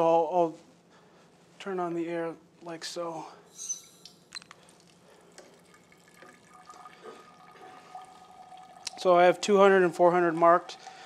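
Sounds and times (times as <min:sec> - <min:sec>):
wine dripping and trickling: 0:03.8 - 0:11.0.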